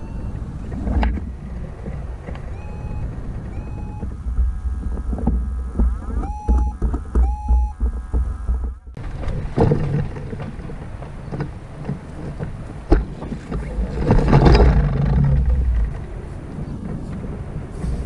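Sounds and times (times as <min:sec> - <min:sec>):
wind buffeting microphone: 0:00.0 - 0:18.0
knocks from glider frame: 0:00.7 - 0:16.1.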